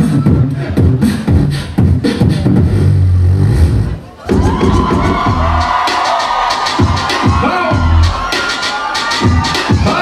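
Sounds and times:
beatboxing with bass hits: 0.0 - 10.0
dj music with turntable scratches: 0.0 - 10.0
crowd cheering: 4.0 - 10.0.

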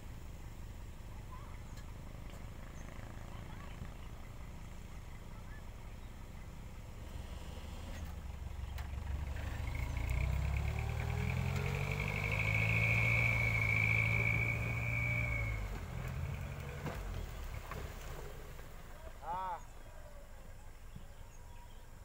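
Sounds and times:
dump truck engine revving: 6.6 - 18.9
hydraulic high whine: 10.8 - 16.8.

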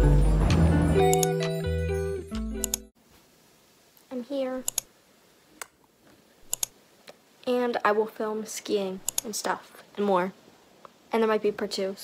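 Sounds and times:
girl speaking: 4.1 - 4.7, 7.4 - 10.4, 11.1 - 12.0.

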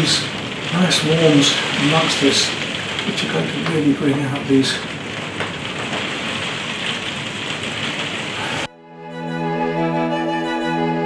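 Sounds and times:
rain on glass roof: 0.0 - 8.7.

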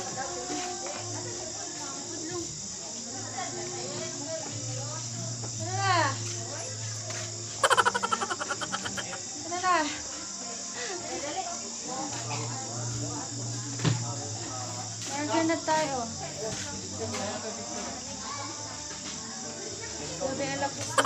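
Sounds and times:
crickets chirping: 0.0 - 21.0
voices calling out: 7.1 - 9.5
rapid rattling trill: 7.6 - 9.2.

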